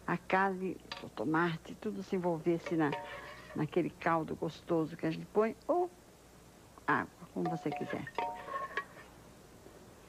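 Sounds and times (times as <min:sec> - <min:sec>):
metal ladle clinking on a pot rim: 0:02.6 - 0:03.2, 0:07.4 - 0:08.9.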